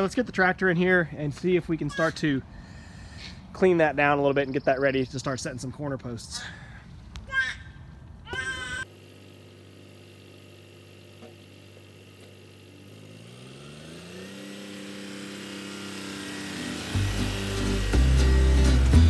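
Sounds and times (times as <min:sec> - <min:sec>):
tractor engine running: 0:08.8 - 0:19.0
music: 0:16.9 - 0:19.0.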